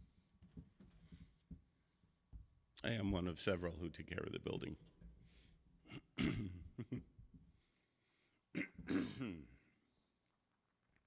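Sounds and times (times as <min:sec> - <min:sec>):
man clearing his throat: 0:05.9 - 0:07.1, 0:08.5 - 0:09.8.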